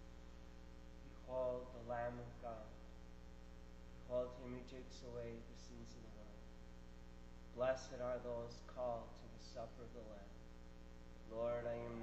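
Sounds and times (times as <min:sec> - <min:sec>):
electrical mains hum: 0:00.0 - 0:12.0
man speaking: 0:01.1 - 0:02.8, 0:04.1 - 0:06.4, 0:07.5 - 0:10.4, 0:11.3 - 0:12.0.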